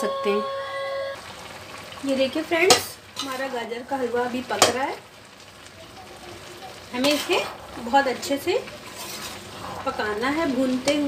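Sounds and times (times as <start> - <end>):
mixture simmering with crackling hiss: 0.0 - 11.0
spoon stirring mixture: 6.9 - 11.0.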